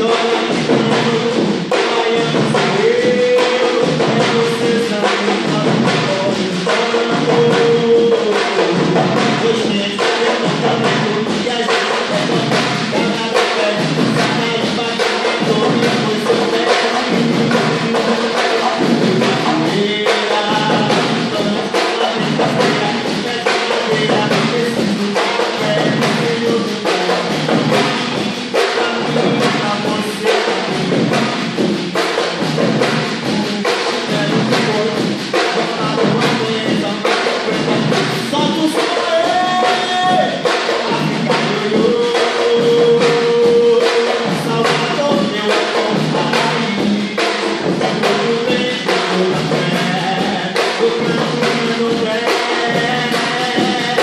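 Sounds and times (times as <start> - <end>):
man singing into microphone: 0.0 - 54.0
percussion ensemble drumming: 0.0 - 54.0.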